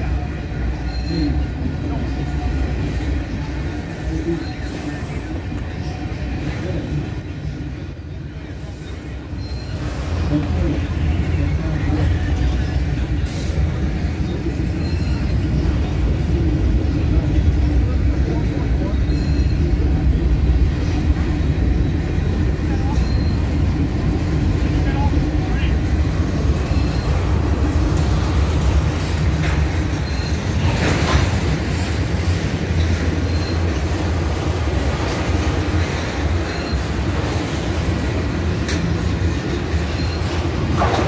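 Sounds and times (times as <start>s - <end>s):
steel wheels rumbling on rail: 0.0s - 41.0s
faint high squeaks: 0.8s - 1.4s, 8.8s - 10.2s, 14.7s - 15.6s, 18.8s - 19.8s, 29.7s - 31.3s, 32.8s - 34.1s, 39.7s - 40.4s.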